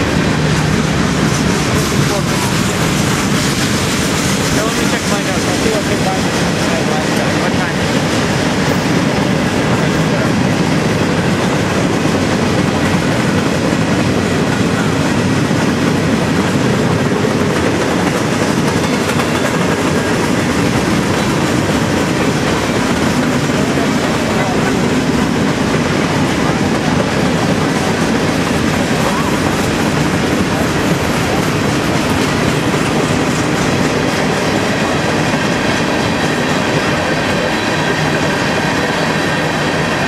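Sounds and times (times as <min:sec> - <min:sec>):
freight train rolling past: 0:00.0 - 0:40.0.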